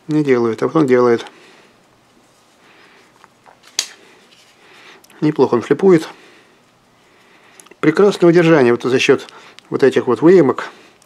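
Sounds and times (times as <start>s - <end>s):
faint handling ticks: 0.2s - 11.0s.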